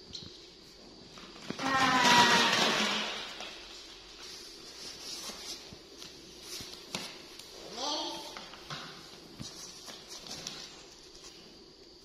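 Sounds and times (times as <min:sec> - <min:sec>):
plastic balls clattering: 0:01.3 - 0:03.8.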